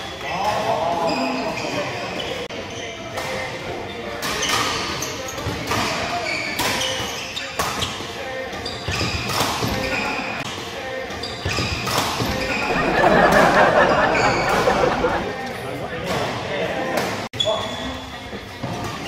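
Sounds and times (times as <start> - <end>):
shoes squeaking on floor: 1.0 - 12.9, 17.4 - 19.0.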